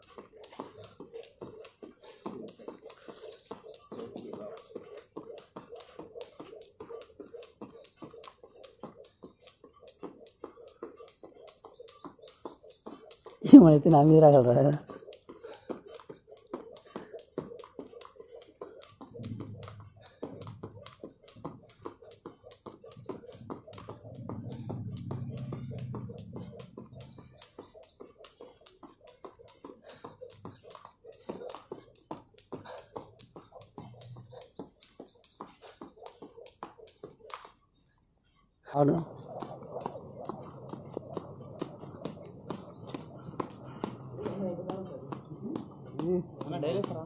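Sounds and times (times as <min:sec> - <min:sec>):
skipping rope slapping pavement: 0:00.0 - 0:37.7, 0:38.9 - 0:47.0.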